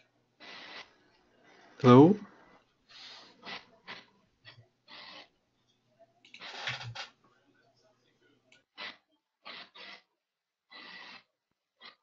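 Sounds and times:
breath puffs on microphone: 2.9s - 4.0s.

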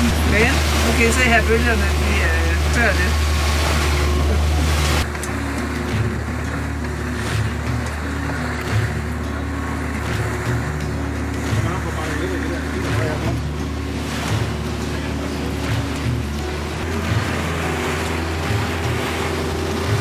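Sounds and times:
outboard engine running: 0.0s - 20.0s
rush of wind and water: 0.0s - 20.0s
background music with slow beat: 3.2s - 20.0s.

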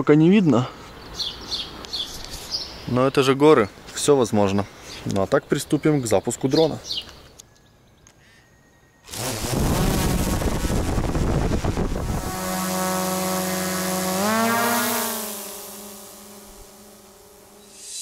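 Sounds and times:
drone propellers whirring: 9.1s - 18.0s.

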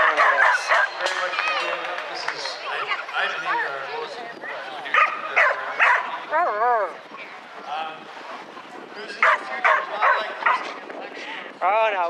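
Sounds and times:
dog barking: 0.0s - 0.9s, 4.9s - 6.1s, 9.2s - 10.7s.

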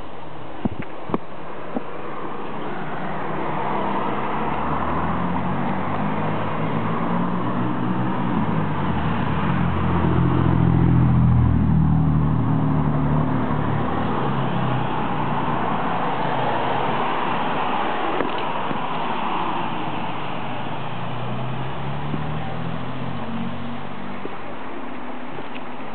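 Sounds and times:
vehicle engine driving past: 2.6s - 17.8s, 19.2s - 24.3s.

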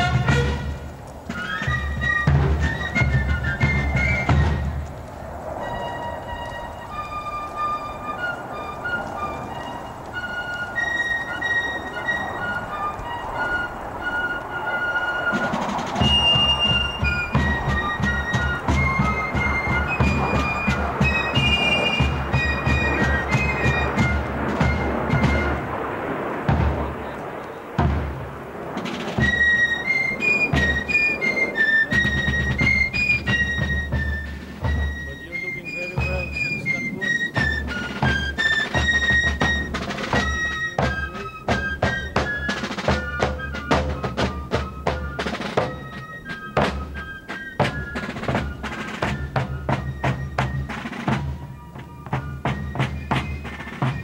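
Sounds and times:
drums steady beat: 0.0s - 4.9s, 15.3s - 54.0s
fifes playing march melody: 0.0s - 54.0s.

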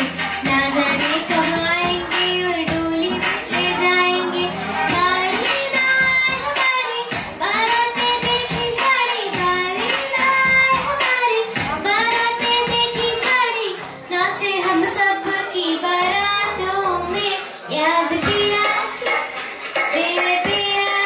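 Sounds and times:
girl singing into microphone: 0.0s - 21.0s.

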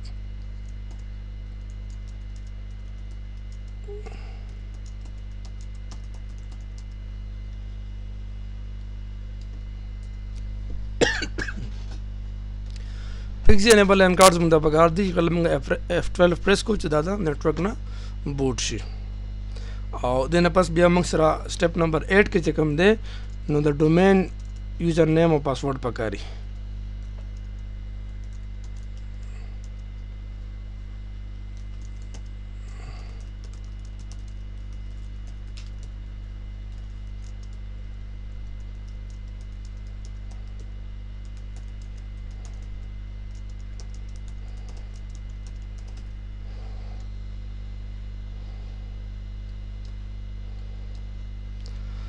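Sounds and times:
steady low hum: 0.0s - 52.0s
man coughing: 11.0s - 12.0s.

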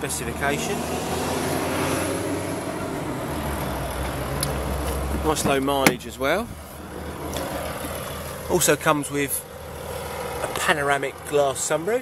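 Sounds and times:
vehicle rumble: 0.0s - 12.0s.

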